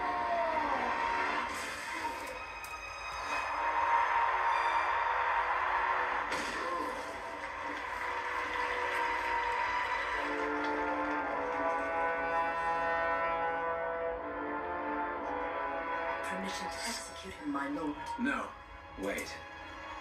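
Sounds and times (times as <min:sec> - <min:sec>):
dramatic soundtrack music: 0:00.0 - 0:20.0.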